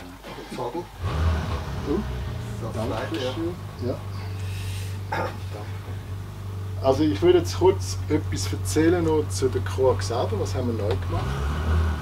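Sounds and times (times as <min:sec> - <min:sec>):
steady low hum: 0:00.0 - 0:11.2.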